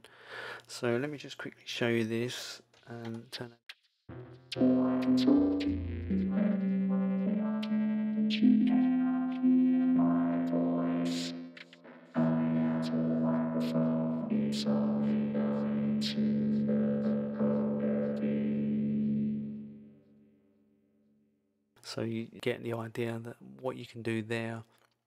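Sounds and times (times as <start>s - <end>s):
held synth chords: 4.1s - 20.0s.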